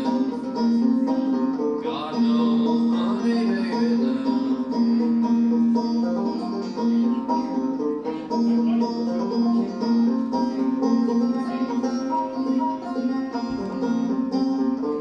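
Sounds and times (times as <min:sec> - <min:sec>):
banjo picking: 0:00.0 - 0:15.0.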